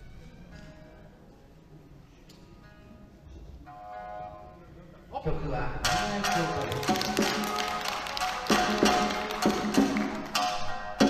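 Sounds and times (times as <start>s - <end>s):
plucked shamisen notes: 5.8s - 11.0s.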